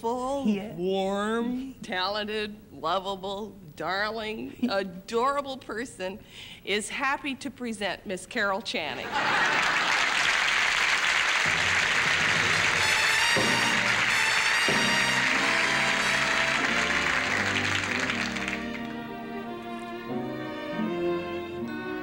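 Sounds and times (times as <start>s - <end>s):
audience applauding: 9.2s - 19.5s
orchestra playing: 11.5s - 22.0s.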